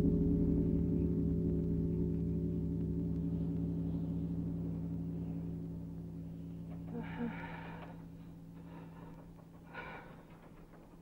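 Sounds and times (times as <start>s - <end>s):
low ringing tone: 0.0s - 9.6s.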